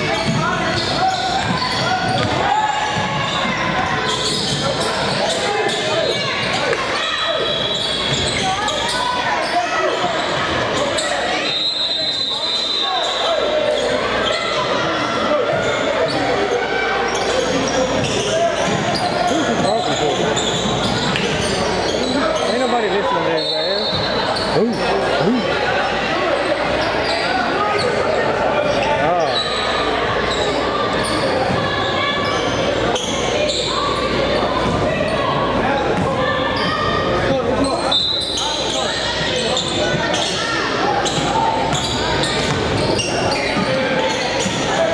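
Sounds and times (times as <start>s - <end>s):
players and spectators talking: 0.0s - 44.9s
ball bouncing on hardwood court: 0.2s - 3.2s.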